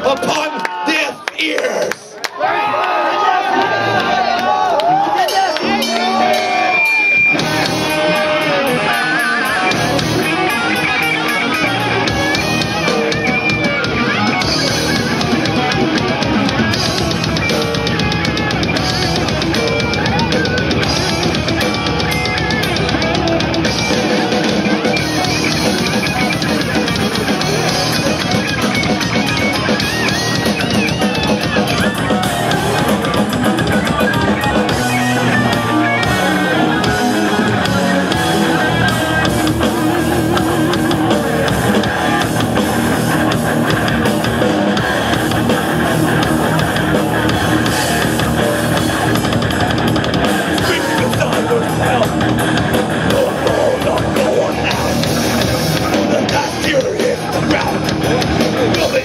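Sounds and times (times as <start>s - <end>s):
electric guitars: 3.4s - 59.0s
drum kit: 4.0s - 59.0s.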